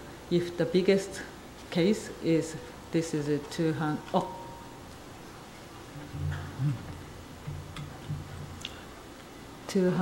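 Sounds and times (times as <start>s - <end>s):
lecture hall room tone: 2.5s - 9.2s
low hum: 3.7s - 9.3s.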